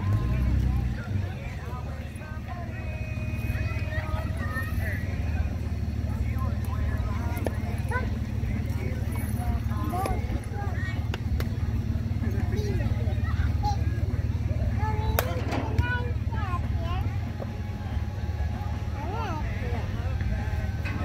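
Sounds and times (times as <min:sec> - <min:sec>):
players calling out: 0:00.0 - 0:21.0.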